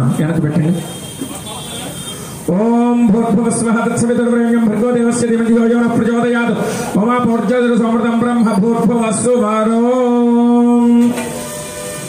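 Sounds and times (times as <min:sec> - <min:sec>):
man chanting: 0:02.5 - 0:11.2.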